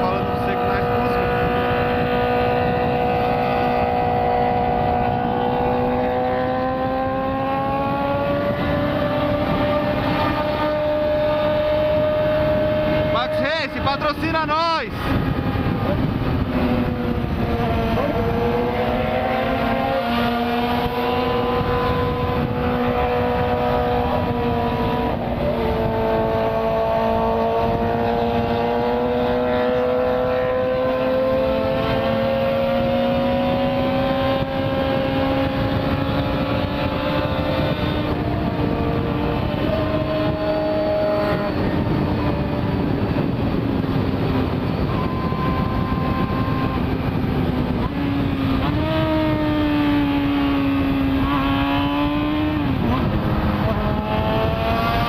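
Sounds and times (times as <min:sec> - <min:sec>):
motorcycle engine cruising: 0:00.0 - 0:55.0
wind noise: 0:00.0 - 0:55.0.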